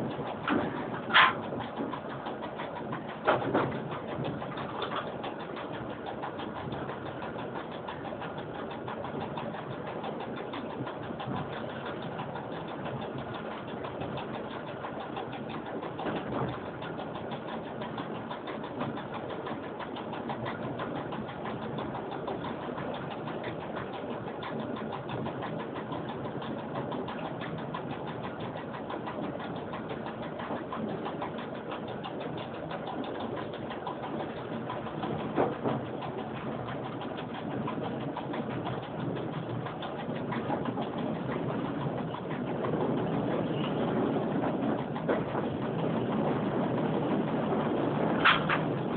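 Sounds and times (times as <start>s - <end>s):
train wheels and motors rumbling: 0.0s - 48.9s.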